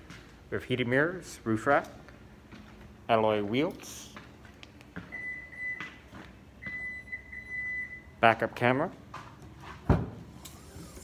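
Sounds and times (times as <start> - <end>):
reverse warning beeps: 5.1 - 5.8, 6.6 - 8.1.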